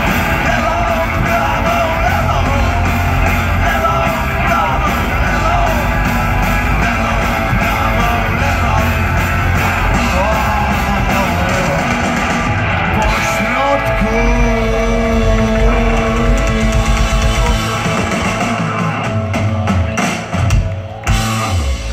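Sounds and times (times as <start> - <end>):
distorted electric guitar: 0.0 - 21.9
drum kit: 0.0 - 21.9.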